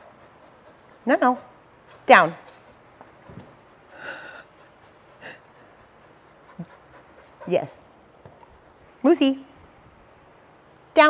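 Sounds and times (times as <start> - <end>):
dog breathing: 3.8 - 8.7.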